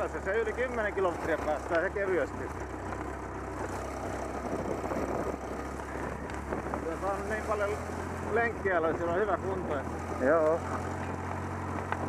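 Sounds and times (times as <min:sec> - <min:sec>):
off-road vehicle engine running: 0:00.0 - 0:12.0
wind rushing over microphone: 0:04.2 - 0:07.5.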